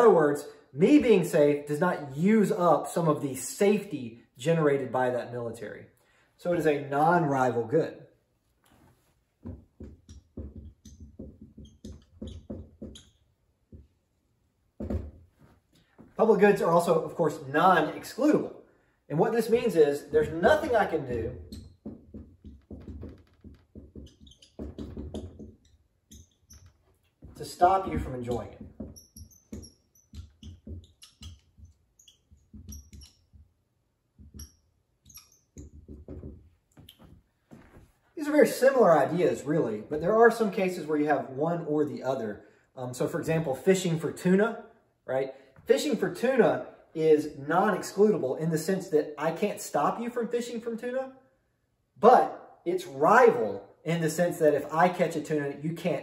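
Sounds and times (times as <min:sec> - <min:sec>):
marker scratching on whiteboard: 0:08.7 - 0:14.1, 0:19.3 - 0:36.5
marker squeaks: 0:09.8 - 0:14.0, 0:19.4 - 0:37.2.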